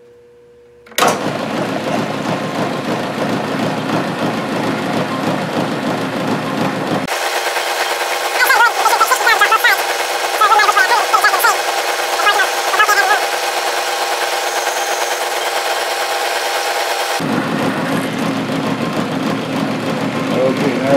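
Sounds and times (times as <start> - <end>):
milling machine running: 1.0 - 20.9
squeaky chirping of drill cutting metal: 8.4 - 17.2.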